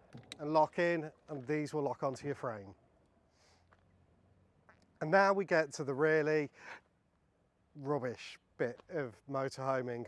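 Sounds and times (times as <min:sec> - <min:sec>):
soft hiss: 0:00.0 - 0:10.0.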